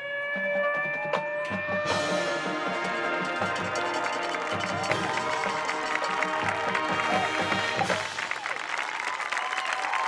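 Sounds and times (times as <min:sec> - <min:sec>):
marching band sustained chord: 0:01.8 - 0:08.3.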